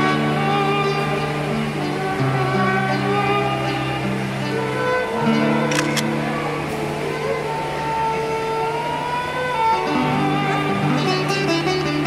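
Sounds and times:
acoustic guitar: 0.0s - 12.0s
violin: 0.0s - 12.0s.

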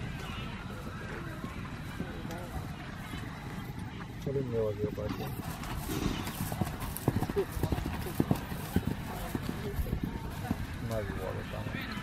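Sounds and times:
horse hoofbeats on grass: 0.0s - 12.0s.

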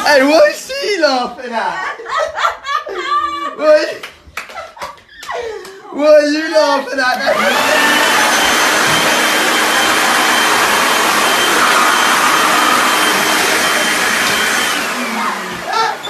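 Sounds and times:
electric blower running: 7.2s - 16.0s.

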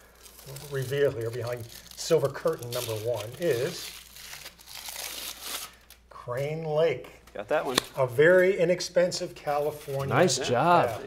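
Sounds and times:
aluminium foil crinkling and tearing: 0.0s - 6.1s.

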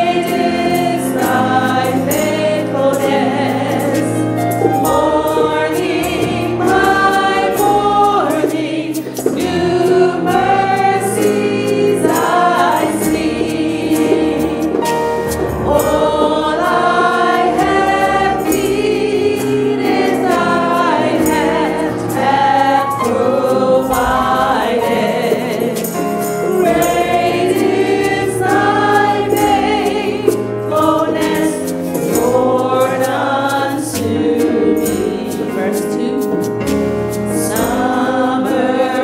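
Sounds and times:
group singing gospel: 0.0s - 39.0s
keyboard accompaniment: 0.0s - 39.0s.

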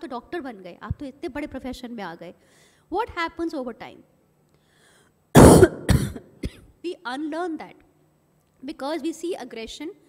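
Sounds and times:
woman coughing: 5.4s - 6.7s.

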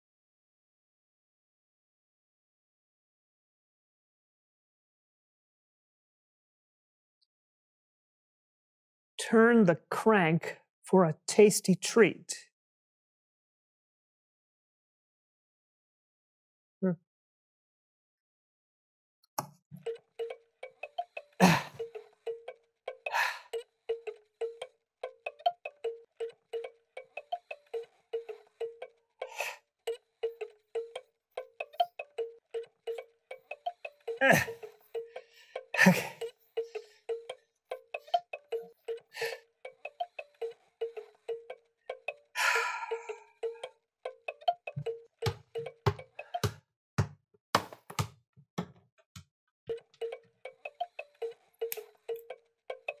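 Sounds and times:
light plinking music: 19.8s - 46.5s, 49.7s - 53.0s
basketball bouncing on wooden floor: 44.4s - 48.9s.

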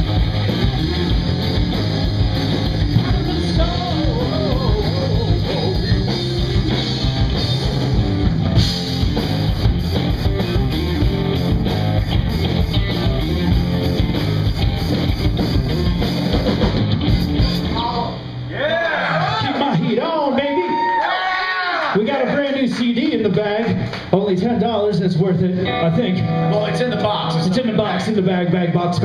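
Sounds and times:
drum kit: 0.0s - 18.5s
electric guitar: 0.0s - 18.6s, 23.7s - 29.0s
electric bass: 0.0s - 19.8s.

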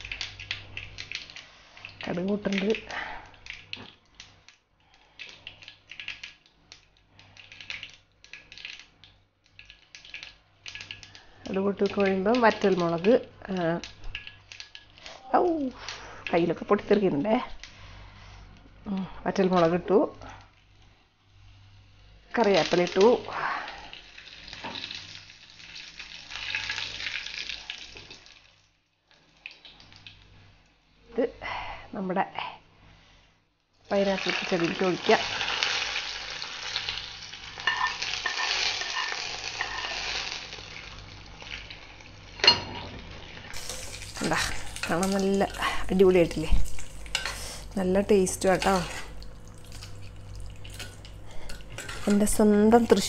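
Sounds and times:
seeds crackling in hot oil: 0.0s - 31.0s, 33.8s - 42.5s, 43.1s - 53.0s
person speaking: 43.6s - 49.2s, 51.9s - 53.0s.

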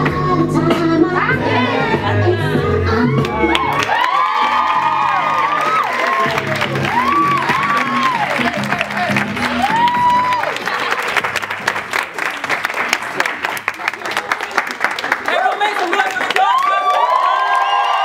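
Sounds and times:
music with sung melody: 0.0s - 10.3s
audience applauding: 3.2s - 18.0s.

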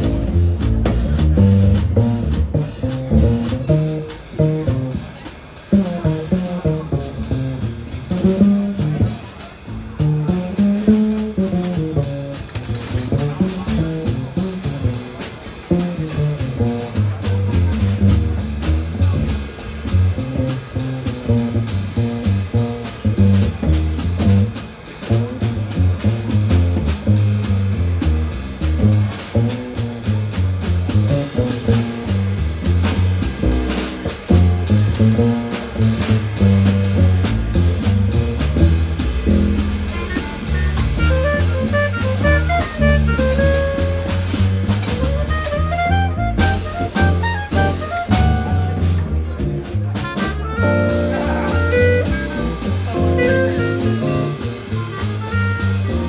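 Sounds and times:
plucked upright bass: 0.0s - 56.0s
stage piano: 0.0s - 56.0s.

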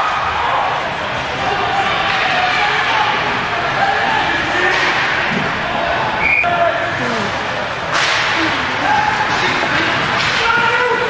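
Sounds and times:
crowd noise: 0.0s - 11.0s
people shouting: 0.0s - 11.0s.

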